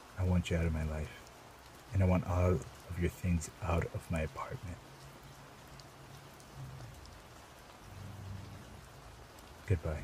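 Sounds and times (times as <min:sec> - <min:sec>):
rain hiss: 0:00.0 - 0:10.0
raindrop ticks: 0:00.0 - 0:10.0.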